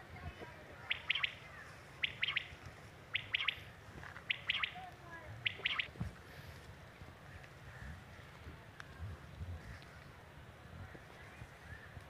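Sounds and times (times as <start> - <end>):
quail three-note call: 0.9 - 1.4, 5.4 - 5.9.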